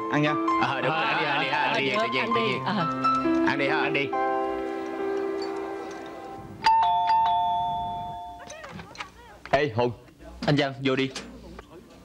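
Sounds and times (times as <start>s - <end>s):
held music chord: 0.0s - 8.4s
two-note doorbell chime: 4.3s - 8.5s.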